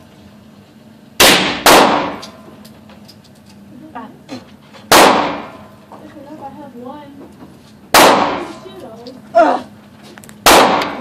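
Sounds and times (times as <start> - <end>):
rifle shot with echo: 1.2 - 2.3, 4.9 - 5.6, 7.9 - 8.5, 10.4 - 11.0.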